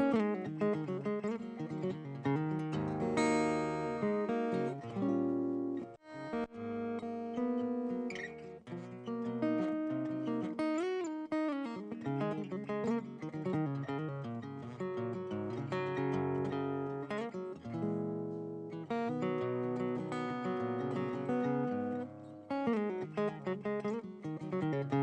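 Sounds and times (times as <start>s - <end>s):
acoustic guitar playing: 0.0s - 25.0s.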